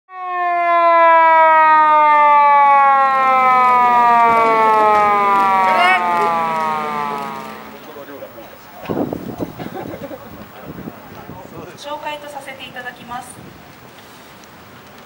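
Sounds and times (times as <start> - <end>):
siren chirp: 0.1 - 7.9
police siren wailing: 0.1 - 8.3.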